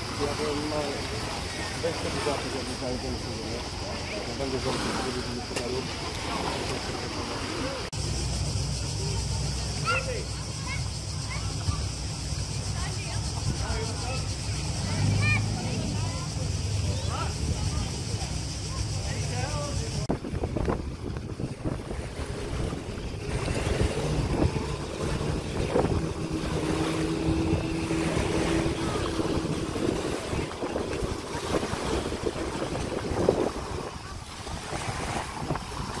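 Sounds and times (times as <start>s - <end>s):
outboard engine humming: 0.0s - 36.0s
small waves washing onto sand: 0.0s - 36.0s
wind on microphone: 10.4s - 36.0s.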